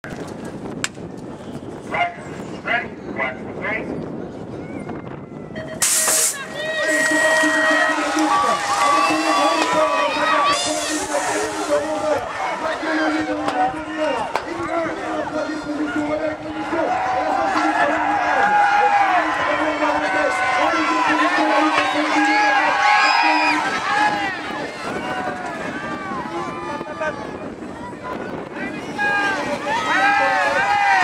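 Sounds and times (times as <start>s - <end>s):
spectators cheering and shouting: 4.8s - 31.0s.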